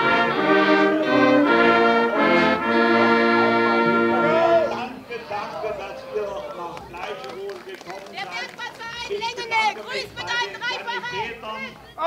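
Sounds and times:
people talking at once: 0.4s - 12.0s
footsteps on cobblestones: 6.4s - 12.0s.

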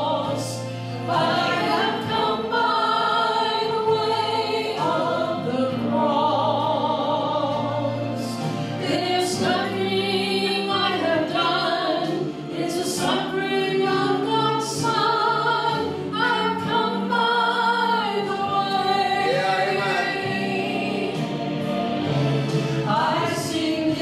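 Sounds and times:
women singing gospel song: 0.0s - 24.0s.

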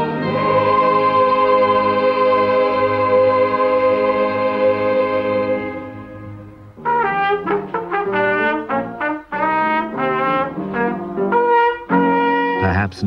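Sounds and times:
trumpet playing detached notes: 6.8s - 13.0s.

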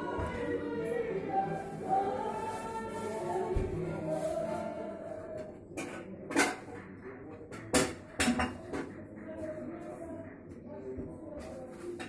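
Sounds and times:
tableware clattering: 5.7s - 6.8s.

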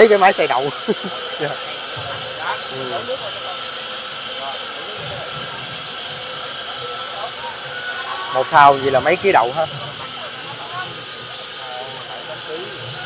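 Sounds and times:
soybean grinder whirring: 0.0s - 13.0s.

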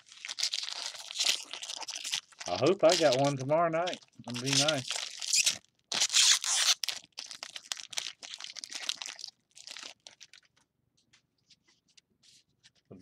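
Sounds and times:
foil wrapper tearing: 0.0s - 10.6s
foil wrapper crinkling: 0.0s - 10.7s.

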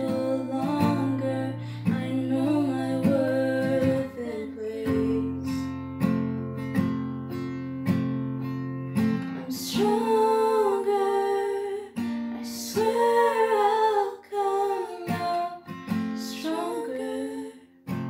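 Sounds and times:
acoustic guitar slow chords: 0.0s - 18.0s.

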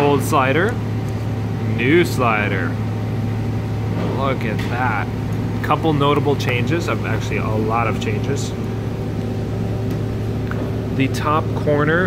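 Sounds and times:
workshop machine hum: 0.0s - 12.0s.

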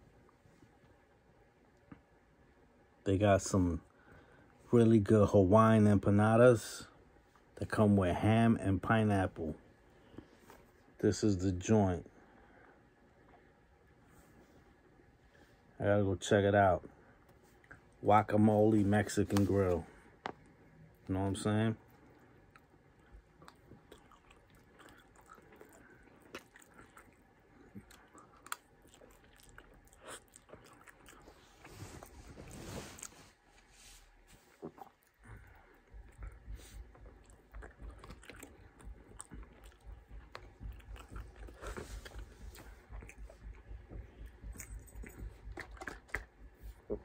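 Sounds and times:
chewing and biting food: 21.8s - 33.5s, 34.4s - 47.0s.

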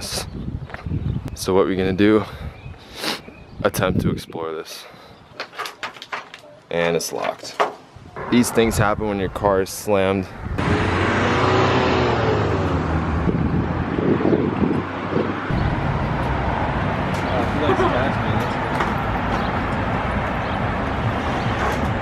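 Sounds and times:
indistinct voices: 8.2s - 9.6s
cars going by on busy road: 10.3s - 22.0s.

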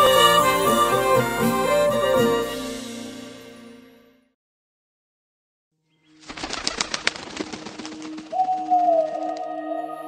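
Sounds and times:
bird wings flapping: 6.2s - 9.5s.

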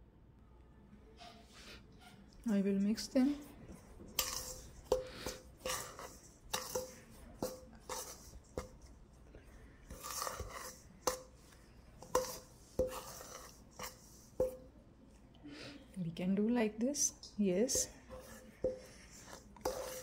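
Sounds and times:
spoon scraping dry mix: 1.2s - 14.7s, 17.6s - 20.0s
spoon clinking on steel bowl: 4.2s - 8.9s, 12.0s - 14.6s.

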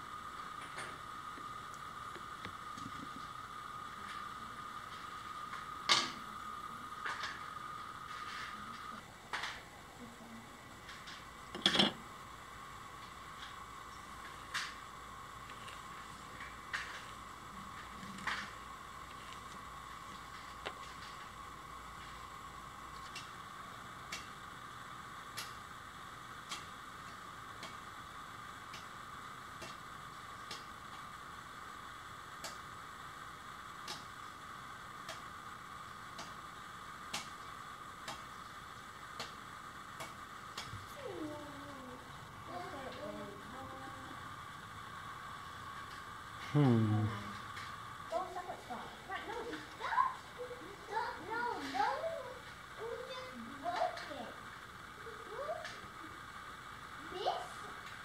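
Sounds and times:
faint steady hum: 0.0s - 58.0s.

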